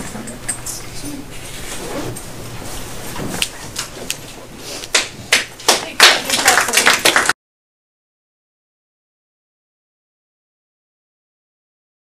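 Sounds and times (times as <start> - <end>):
people clapping: 4.9 - 7.4.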